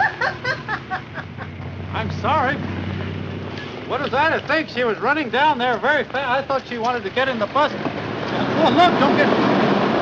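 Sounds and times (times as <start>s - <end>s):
woman laughing: 0.0s - 1.6s
bus engine rumbling: 0.0s - 10.0s.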